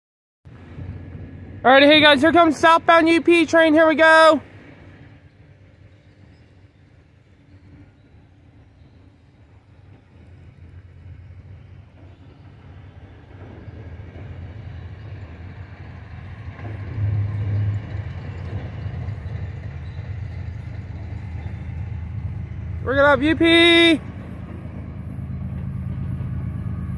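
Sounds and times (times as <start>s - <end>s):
freight train diesel locomotives rumbling: 0.5s - 26.9s.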